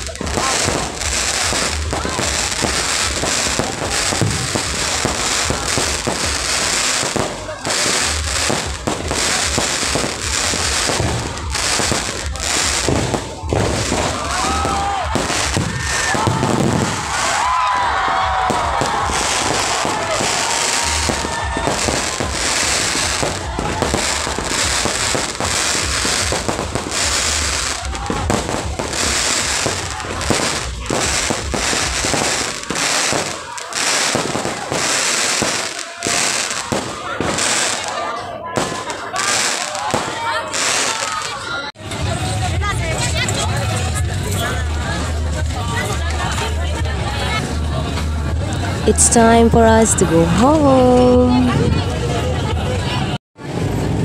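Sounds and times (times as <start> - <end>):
fireworks bangs and crackling: 0.0 - 54.0.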